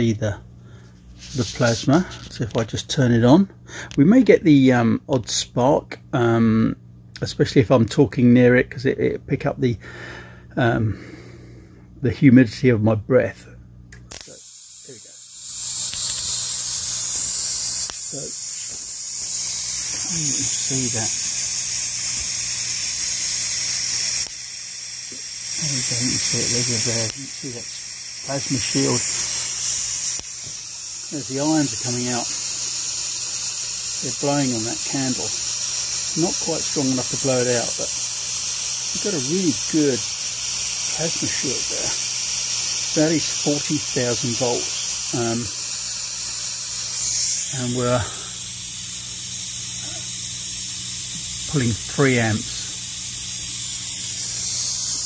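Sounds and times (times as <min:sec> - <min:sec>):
low electrical hum: 0:00.0 - 0:55.0
corona discharge hiss: 0:00.7 - 0:02.6, 0:14.0 - 0:55.0.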